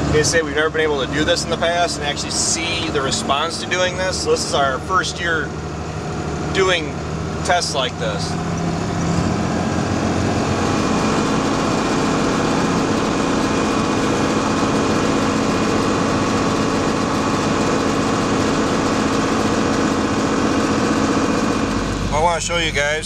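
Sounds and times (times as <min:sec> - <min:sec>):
tractor engine running under load: 0:00.0 - 0:23.0.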